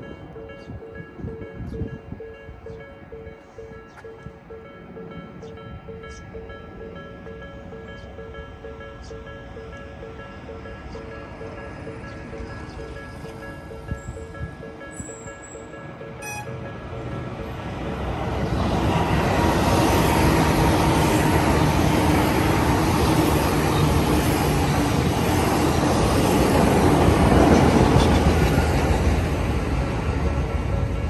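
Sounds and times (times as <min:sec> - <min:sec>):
crossing warning bell ringing: 0:00.0 - 0:31.0
train rumbling past: 0:00.0 - 0:31.0.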